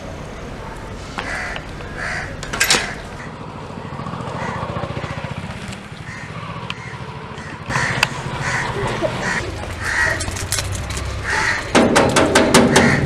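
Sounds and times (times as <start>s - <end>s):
crows cawing: 1.2s - 13.0s.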